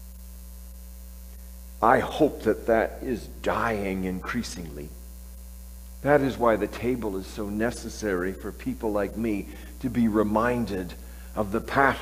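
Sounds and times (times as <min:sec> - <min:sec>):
electrical mains hum: 0:00.0 - 0:12.0
faint high steady tones: 0:00.0 - 0:12.0
man's voice: 0:01.8 - 0:04.9, 0:06.0 - 0:12.0.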